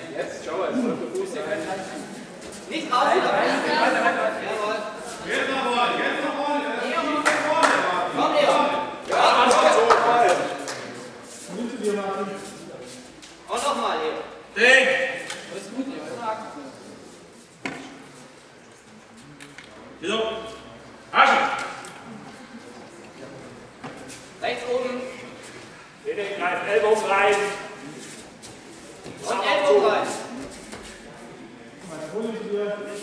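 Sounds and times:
background murmur in hall: 0.0s - 33.0s
faint indistinct voices: 0.0s - 33.0s
man speaking: 26.0s - 27.8s, 29.2s - 30.2s.

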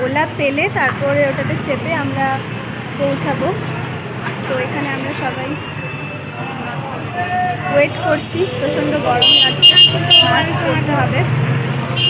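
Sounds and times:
low traffic rumble: 0.0s - 12.0s
high-pitched vehicle horn toots: 9.2s - 10.7s.

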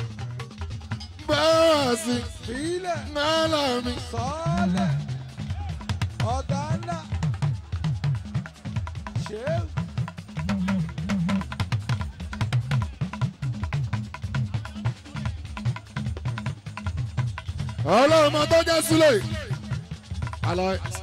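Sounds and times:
fast dense drumming: 0.0s - 21.0s
bass line: 3.4s - 7.3s.

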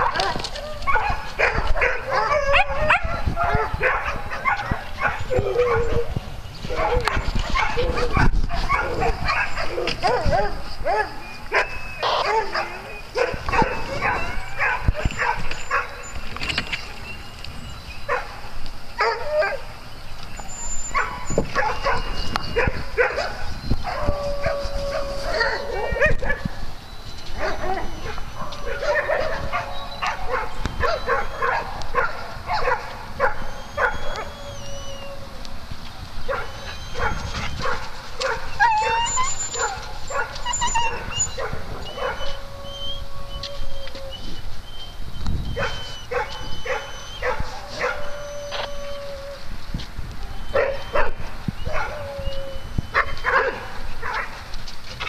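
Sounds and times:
dogs barking: 0.0s - 16.2s, 18.0s - 18.4s, 19.0s - 19.7s, 20.8s - 26.6s, 27.4s - 34.9s, 36.2s - 42.7s, 45.5s - 48.8s, 50.5s - 52.2s, 52.9s - 54.4s
dog whining or howling: 0.0s - 18.3s, 19.0s - 19.8s, 20.4s - 54.2s.

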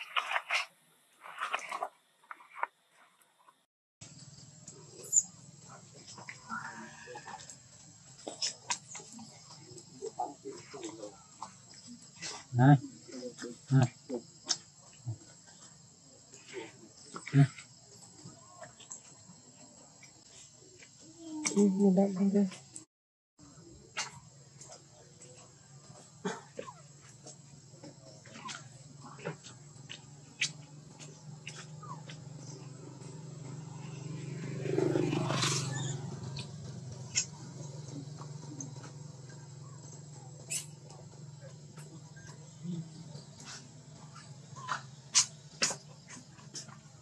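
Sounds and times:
monkeys squeaking and chirping: 4.9s - 6.4s, 28.1s - 32.8s, 35.3s - 38.9s, 40.3s - 42.4s.

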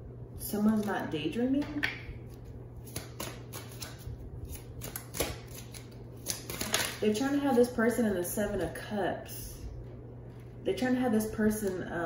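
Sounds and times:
cards being shuffled: 2.2s - 7.6s.

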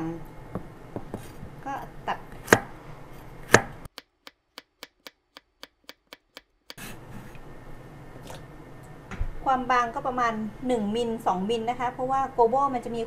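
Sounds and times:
knife chopping on cutting board: 1.0s - 1.4s, 2.3s - 2.8s, 3.4s - 7.0s.

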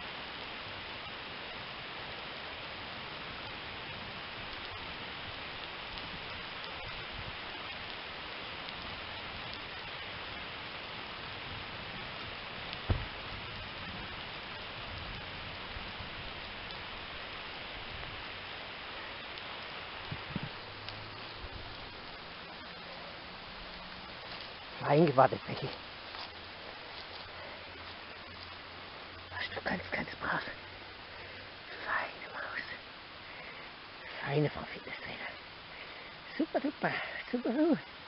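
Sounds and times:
rain falling: 0.0s - 38.0s
heavy stone thud on ground: 12.8s - 13.2s.

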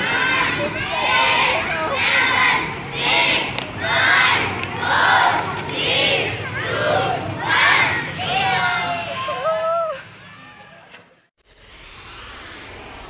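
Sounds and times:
children shouting in unison: 0.0s - 10.7s.

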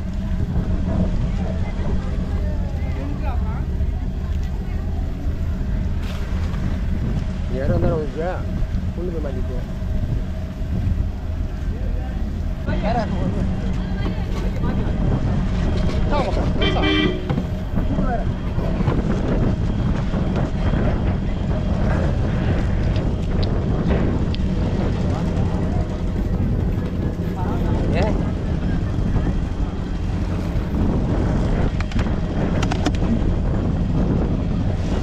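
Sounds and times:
boat engine rumbling: 0.0s - 35.0s
horn toot: 16.5s - 17.5s.

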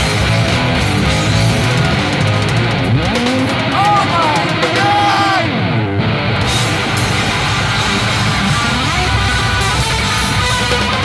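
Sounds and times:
electric guitar sliding notes: 0.0s - 11.0s
live rock band playing: 0.0s - 11.0s.

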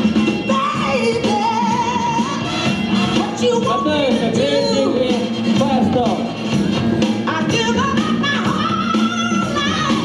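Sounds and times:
loud music with singing voice: 0.0s - 10.0s.

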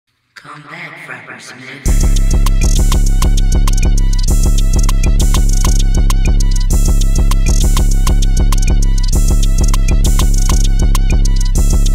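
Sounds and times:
fast drum-machine hits: 1.9s - 11.9s
heavy sustained bass: 1.9s - 11.9s.

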